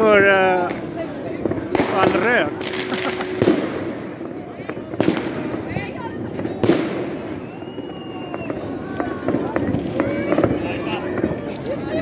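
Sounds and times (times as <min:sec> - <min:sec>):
distant firework bursts: 0:00.0 - 0:11.5
sharp firework bangs: 0:00.6 - 0:11.3
long thin firework whistle: 0:07.1 - 0:09.4.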